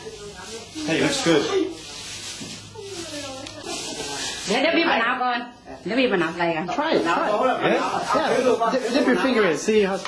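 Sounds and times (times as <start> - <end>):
quiet voices talking: 0.0 - 10.0.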